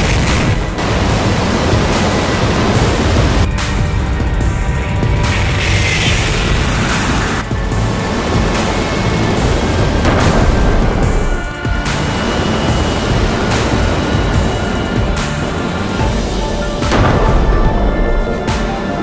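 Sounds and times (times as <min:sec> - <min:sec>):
deep rocket engine rumble: 0:00.0 - 0:19.0
music: 0:00.0 - 0:19.0.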